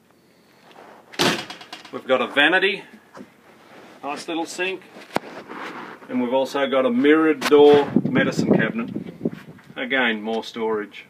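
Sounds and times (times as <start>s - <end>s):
door shutting with a bang: 1.2s - 1.9s
door rattling: 1.2s - 2.2s.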